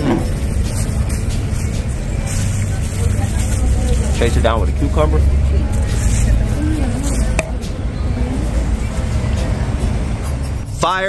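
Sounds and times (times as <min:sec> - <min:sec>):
faint music: 0:00.0 - 0:11.0
street traffic rumble: 0:00.0 - 0:11.0
man's voice: 0:03.9 - 0:06.1.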